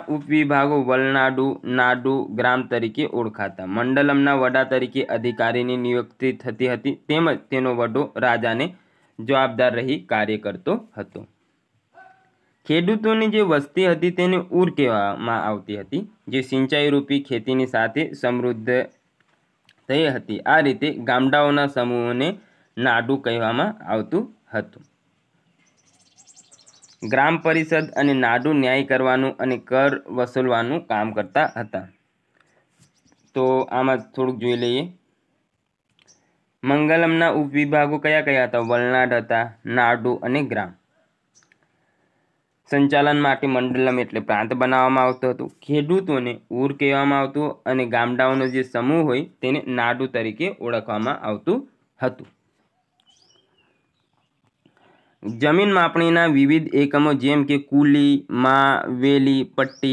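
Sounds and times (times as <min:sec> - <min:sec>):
small animal chirping: 0:25.6 - 0:27.1.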